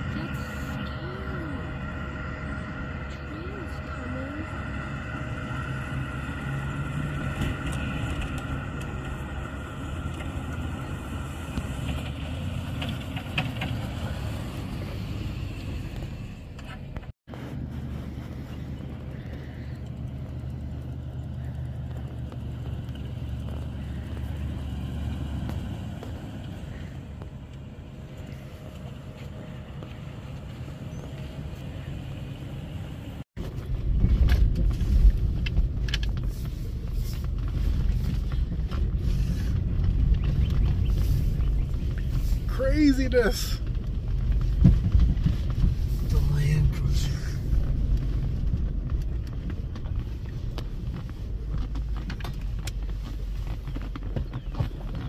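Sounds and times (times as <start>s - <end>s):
suv engine hum: 0.0s - 55.0s.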